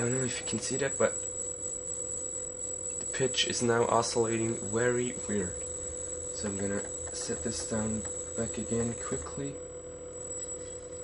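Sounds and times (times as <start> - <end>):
gimbal motor humming: 0.0 - 11.0.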